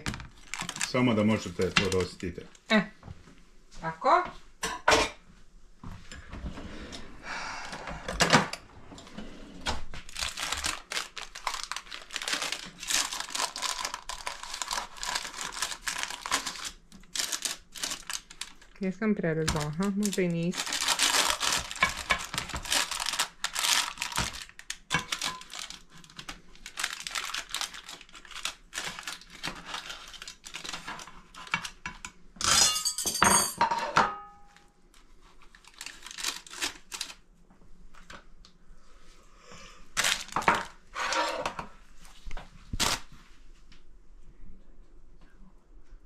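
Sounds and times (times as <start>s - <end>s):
baking paper crinkling: 0.3s - 2.7s, 9.8s - 31.9s, 35.0s - 37.3s, 40.0s - 43.3s
pie server scraping through pie: 40.9s - 41.6s.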